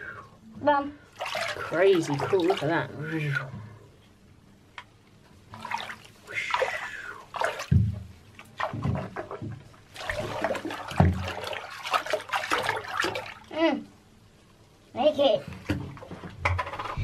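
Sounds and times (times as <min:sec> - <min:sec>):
bath water splashing by hand: 0:01.1 - 0:03.5, 0:05.5 - 0:13.5.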